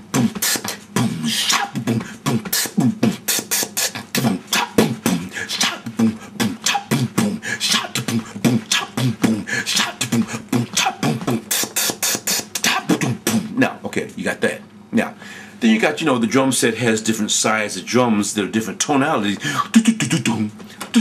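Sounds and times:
man beatboxing: 0.0s - 13.8s, 19.2s - 21.0s.

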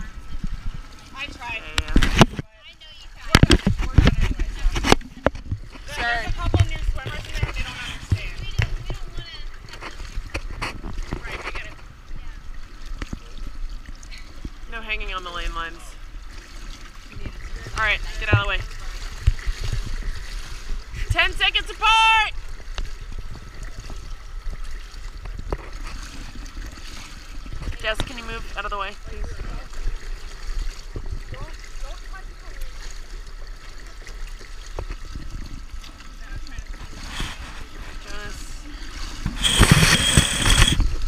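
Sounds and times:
pool water splashing: 0.0s - 41.0s.

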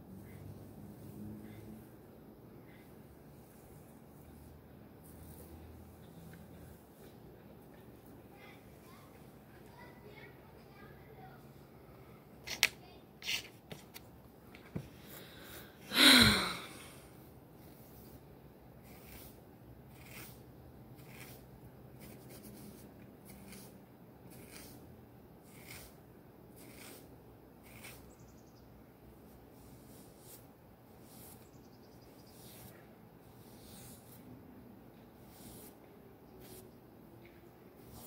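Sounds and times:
hairbrush strokes through hair: 0.0s - 9.2s, 18.8s - 26.0s, 26.6s - 28.2s, 29.2s - 34.4s, 35.0s - 38.0s.

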